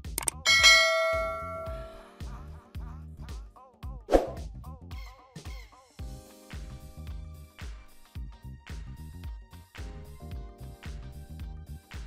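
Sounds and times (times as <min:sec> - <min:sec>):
quick clicks: 0:00.0 - 0:00.4
bright bell chime: 0:00.4 - 0:02.1.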